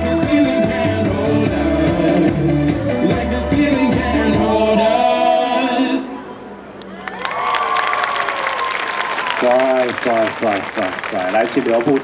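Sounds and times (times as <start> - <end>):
dance music: 0.0 - 6.0
audience applauding and cheering: 6.9 - 12.0.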